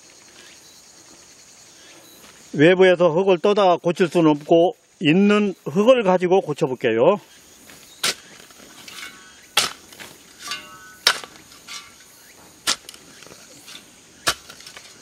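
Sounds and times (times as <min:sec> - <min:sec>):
faint insects chirring: 0:00.0 - 0:15.0
hand tool chopping stony soil: 0:07.7 - 0:15.0.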